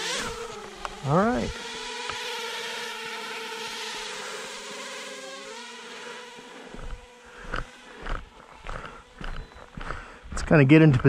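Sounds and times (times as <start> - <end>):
drone propellers buzzing: 0.0 - 10.4
footsteps: 6.3 - 11.0.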